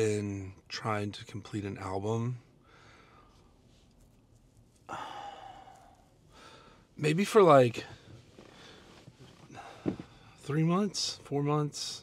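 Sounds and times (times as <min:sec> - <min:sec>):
man sighing: 0:04.9 - 0:06.5.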